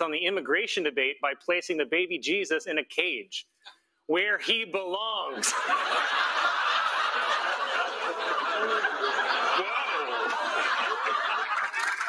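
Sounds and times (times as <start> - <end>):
audience laughing: 5.3 - 12.0.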